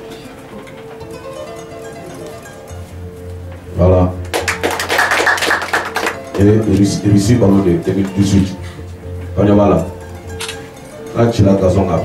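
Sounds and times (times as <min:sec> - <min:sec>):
crowd applauding: 0:04.3 - 0:06.6.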